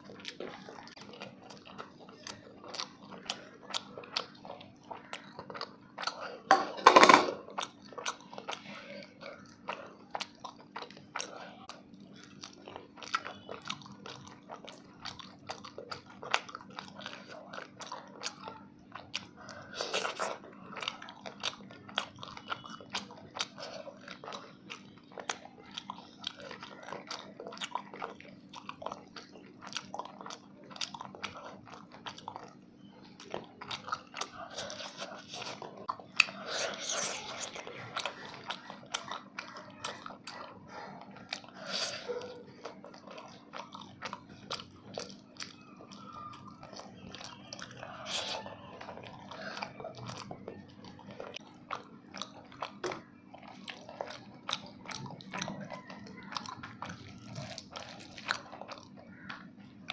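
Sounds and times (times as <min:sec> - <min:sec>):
wet chewing and lip smacks: 0:00.0 - 0:06.5, 0:07.4 - 0:59.9
low steady hum: 0:00.0 - 0:59.9.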